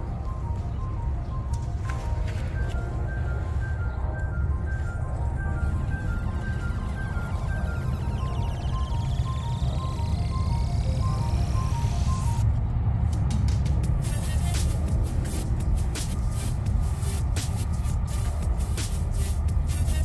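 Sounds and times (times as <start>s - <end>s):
background music with heavy bass: 0.0s - 20.0s.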